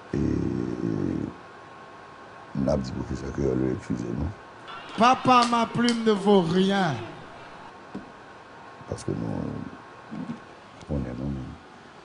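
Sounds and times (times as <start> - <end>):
man's hesitant drawn-out voice: 0.0 - 1.5, 2.5 - 7.7, 8.8 - 11.7.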